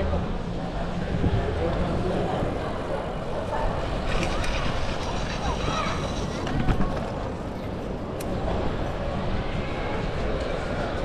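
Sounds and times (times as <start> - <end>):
bike clicking and rattling on tiles: 3.9 - 7.6.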